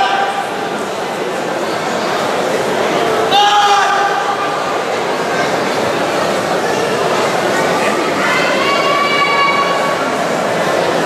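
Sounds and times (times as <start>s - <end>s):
sports hall hubbub: 0.0s - 11.0s.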